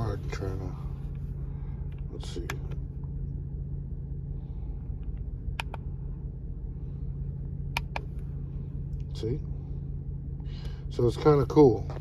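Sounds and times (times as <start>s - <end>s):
low cabin hum: 0.0s - 12.0s
push buttons clicking: 5.6s - 5.8s.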